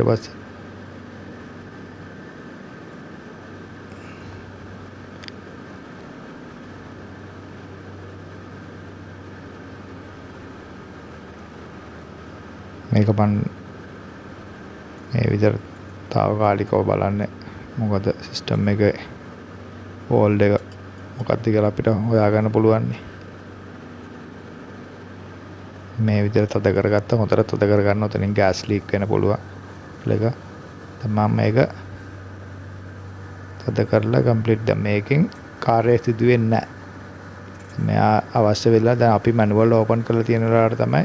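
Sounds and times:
air conditioner hum: 0.0 - 41.0
faint high whine: 0.0 - 41.0
small click: 5.2 - 5.4.

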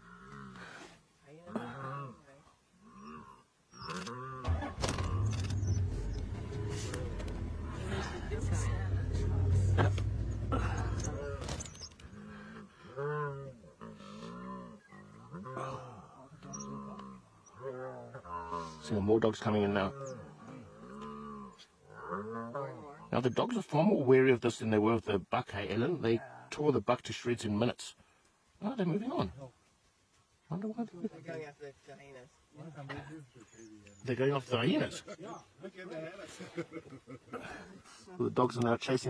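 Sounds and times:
low moaning animal calls: 2.8 - 18.8, 19.6 - 23.2
vehicle engine running: 4.5 - 11.2.

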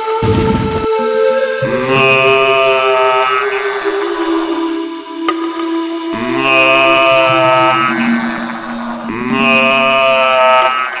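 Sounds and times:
deep chanted voice holding a note: 0.0 - 11.0
music: 0.0 - 11.0.

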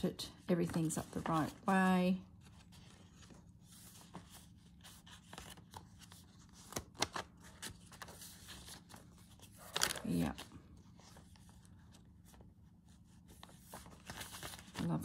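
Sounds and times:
paper pages rustling: 0.6 - 15.0.

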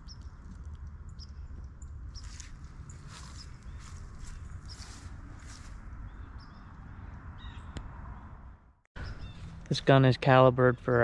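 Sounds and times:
bird calls: 2.1 - 5.1, 9.0 - 9.6.

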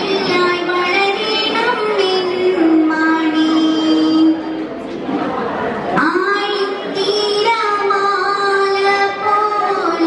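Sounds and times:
woman singing into microphone: 0.0 - 4.5, 6.0 - 10.0.

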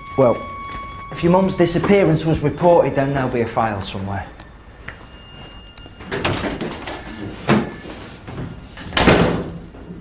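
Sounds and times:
door opening and shutting: 4.8 - 10.0.

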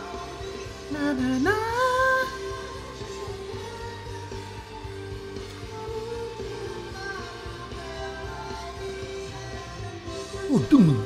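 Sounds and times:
lead vocal held high note: 10.2 - 11.0.

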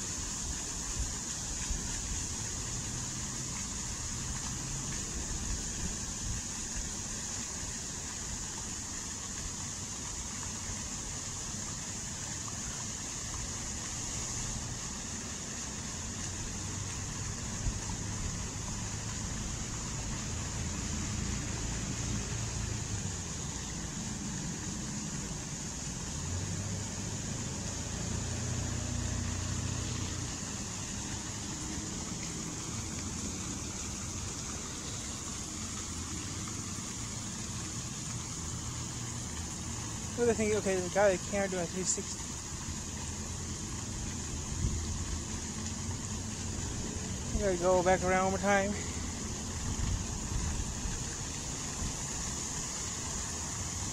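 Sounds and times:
fountain water splashing: 0.0 - 53.9.

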